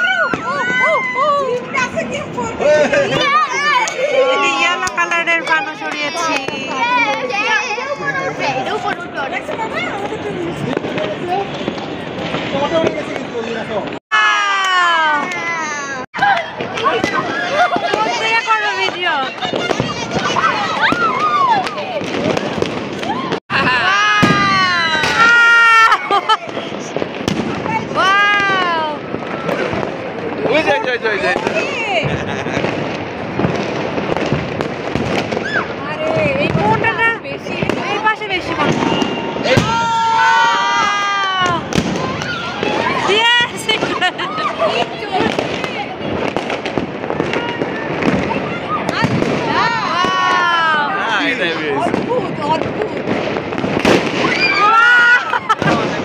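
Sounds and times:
people shouting and whooping: 0.0 - 8.8, 14.1 - 29.9, 37.8 - 53.1, 53.8 - 56.0
fireworks banging and crackling: 0.0 - 56.0.

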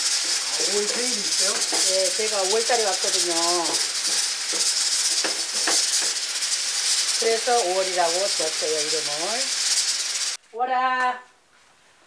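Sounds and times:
hissing rattling noise: 0.0 - 10.4.

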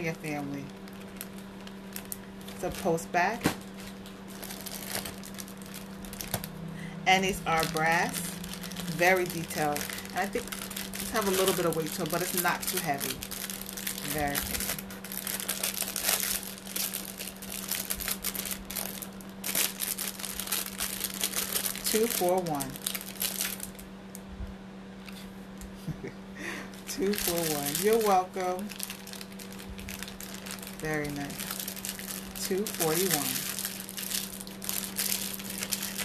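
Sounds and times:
steady low hum: 0.0 - 36.0
paper card crinkling and rustling: 0.6 - 6.5, 7.6 - 23.8, 27.0 - 36.0.

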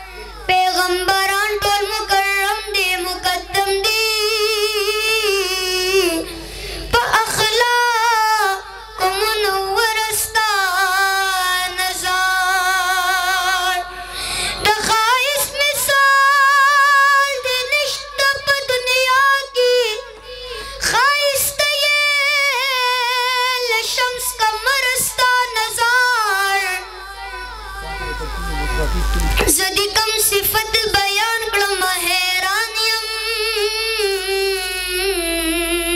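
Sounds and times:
boy singing in a high voice: 0.0 - 6.3, 6.9 - 13.9, 14.6 - 35.9
short breaths: 6.3 - 6.9, 13.9 - 14.6.

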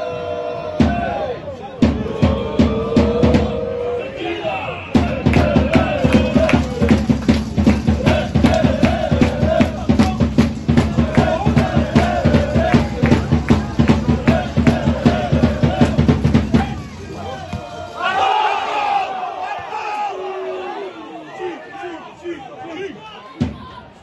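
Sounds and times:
football crowd chanting: 0.0 - 24.0
drum beating: 0.1 - 4.0, 4.9 - 18.3, 23.3 - 23.9.

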